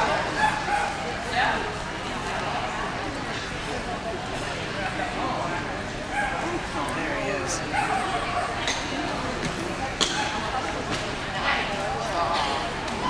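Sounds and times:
murmur of many people talking: 0:00.0 - 0:13.0
dog barking: 0:07.7 - 0:08.6.

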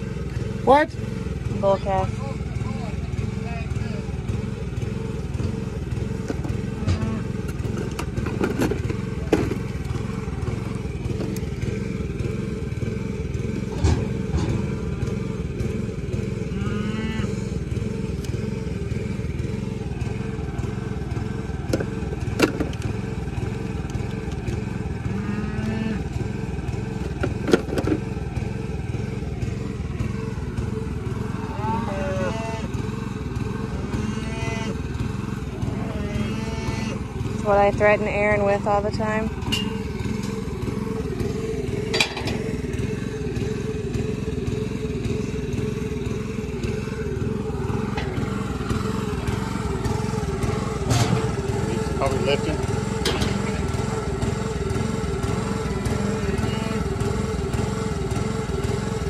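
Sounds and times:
vehicle engine idling: 0:00.0 - 0:59.0
metal tools clicking and clanking: 0:39.4 - 0:40.4, 0:41.9 - 0:42.5, 0:53.0 - 0:53.6.

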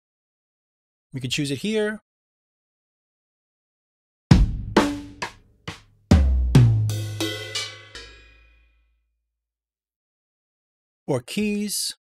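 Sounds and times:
deep drum booms: 0:04.3 - 0:08.3
sampled drum hits: 0:04.3 - 0:08.6
cymbals ringing: 0:06.9 - 0:08.6.

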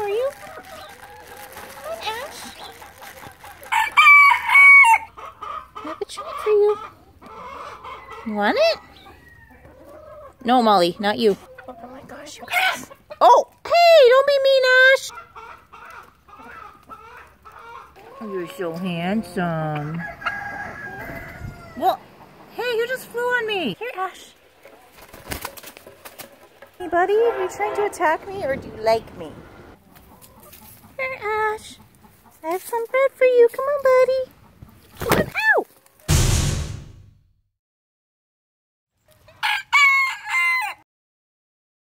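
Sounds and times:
rooster crowing: 0:03.7 - 0:05.1, 0:19.8 - 0:22.0, 0:39.4 - 0:40.8.

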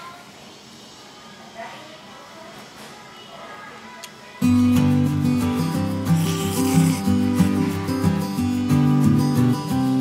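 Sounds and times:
acoustic guitar melody: 0:04.4 - 0:10.0
rasping noise: 0:05.8 - 0:07.8.

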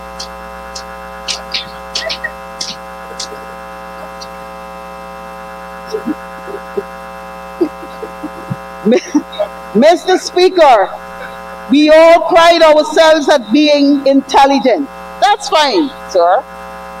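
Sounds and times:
electrical mains hum: 0:00.0 - 0:17.0.

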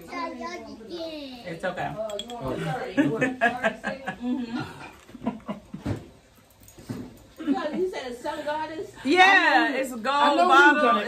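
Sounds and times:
voices in conversation: 0:00.0 - 0:11.0.

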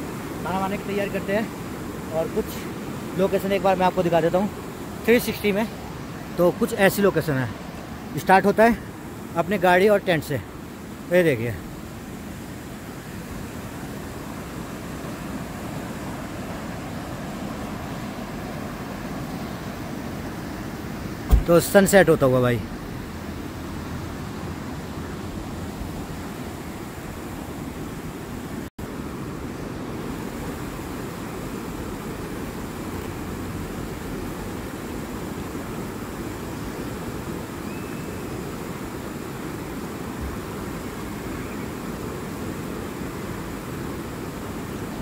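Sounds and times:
fast-flowing river rushing: 0:00.0 - 0:45.0.

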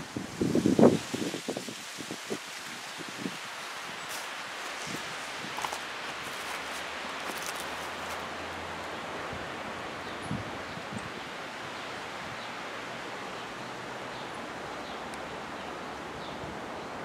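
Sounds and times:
outdoor ambient hiss: 0:00.0 - 0:17.0.

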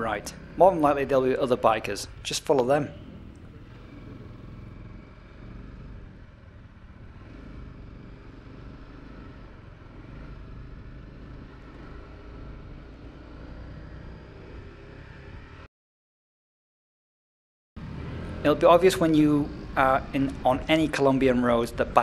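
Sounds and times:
motorcycle engine running: 0:00.0 - 0:15.7, 0:17.8 - 0:22.0
road and wind noise: 0:00.0 - 0:15.7, 0:17.8 - 0:22.0.

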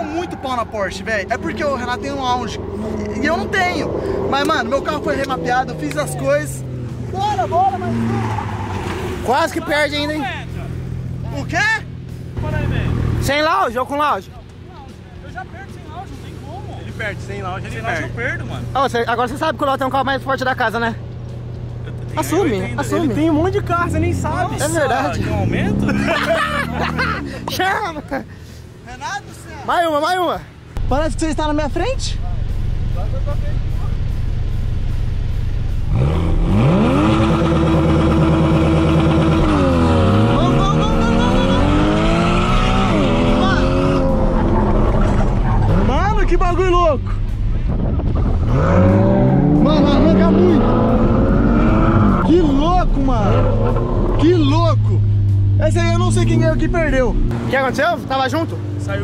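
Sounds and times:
men exclaiming: 0:00.0 - 0:10.8, 0:22.0 - 0:28.3, 0:39.0 - 0:44.8
car engine humming: 0:00.0 - 0:59.0.

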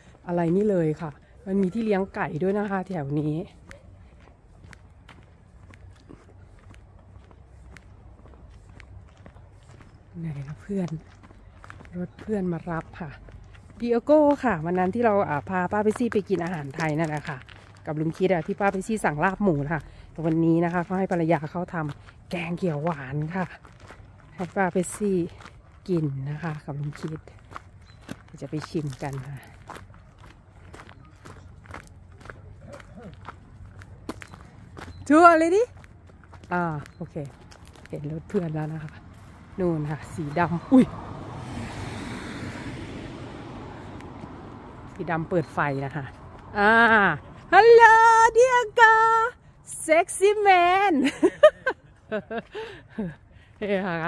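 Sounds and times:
footsteps on concrete pavers: 0:00.0 - 0:41.4, 0:43.1 - 0:54.0.

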